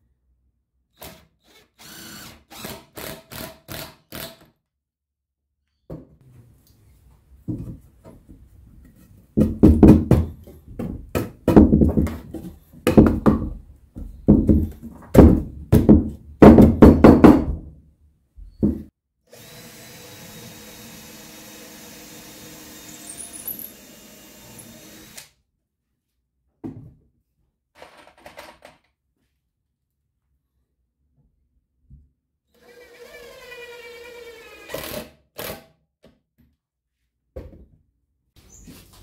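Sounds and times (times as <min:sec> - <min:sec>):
heavy wooden knocks: 0:09.4 - 0:17.7.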